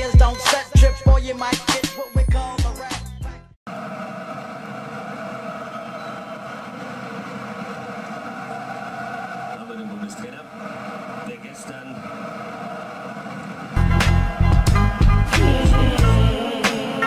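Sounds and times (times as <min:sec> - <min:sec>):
rap music: 0:00.0 - 0:03.4, 0:05.6 - 0:17.0
stadium crowd noise on television: 0:03.7 - 0:17.0.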